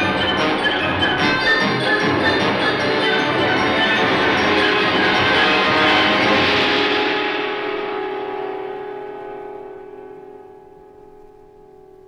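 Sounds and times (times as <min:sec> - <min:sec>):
bells ringing: 0:00.0 - 0:06.8
opera orchestra chord: 0:00.0 - 0:10.7.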